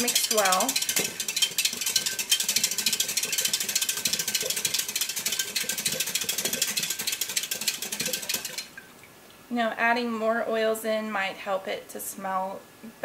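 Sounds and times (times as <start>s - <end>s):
whisk clicking against glass: 0.0s - 8.8s.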